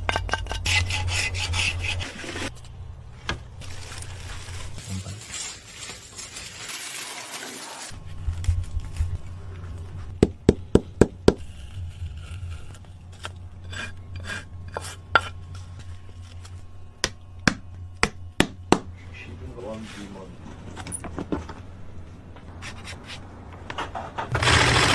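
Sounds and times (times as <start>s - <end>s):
low steady hum: 0.0s - 6.4s, 7.9s - 24.2s.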